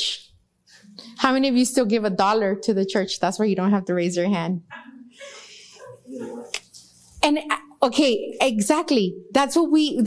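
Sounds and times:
person speaking: 0:00.8 - 0:09.2.

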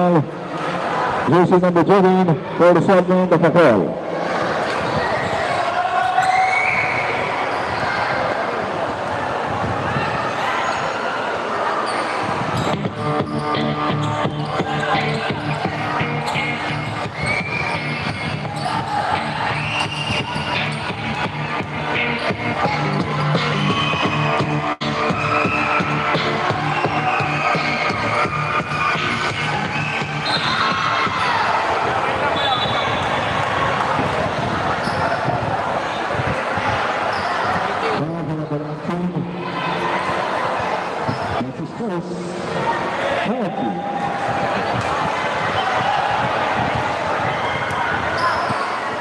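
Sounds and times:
sneakers squeaking: 0:04.4 - 0:11.0, 0:11.6 - 0:38.0, 0:39.6 - 0:41.4, 0:43.9 - 0:49.0
music playing: 0:12.7 - 0:33.0
ball bouncing on court: 0:44.3 - 0:48.6.

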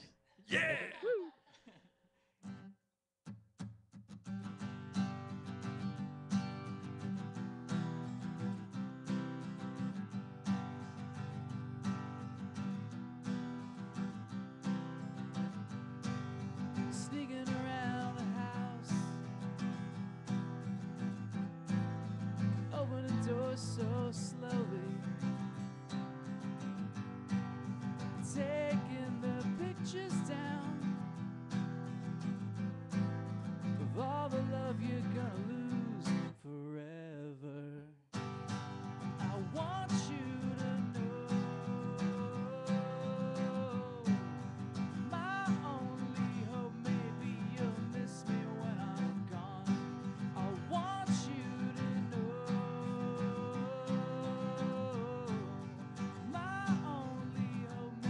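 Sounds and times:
acoustic guitar strumming: 0:03.6 - 0:36.3, 0:38.2 - 0:58.0.

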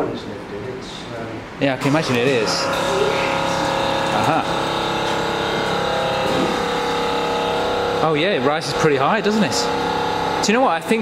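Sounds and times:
constant hum: 0:00.0 - 0:11.0.

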